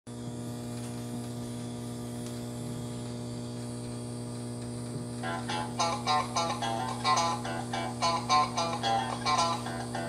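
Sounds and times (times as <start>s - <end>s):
electrical mains hum: 0.1s - 10.0s.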